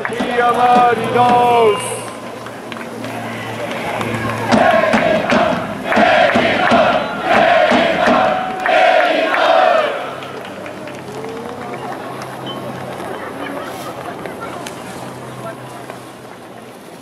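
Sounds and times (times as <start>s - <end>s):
supporters chanting in unison: 0.0s - 2.1s, 3.1s - 10.4s
crowd noise: 0.0s - 17.0s.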